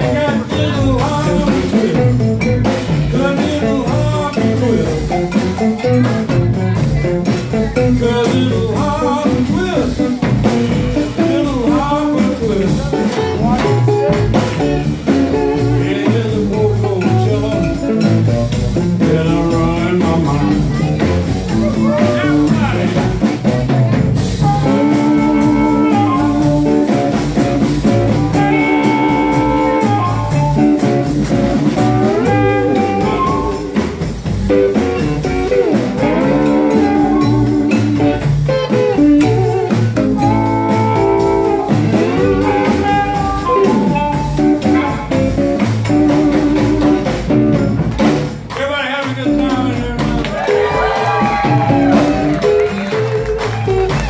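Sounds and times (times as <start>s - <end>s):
blues band playing: 0.0s - 54.0s.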